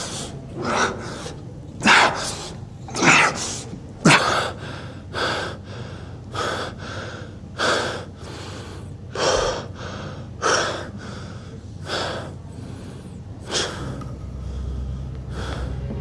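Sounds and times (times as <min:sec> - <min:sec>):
man panting heavily: 0:00.0 - 0:02.6, 0:03.3 - 0:16.0.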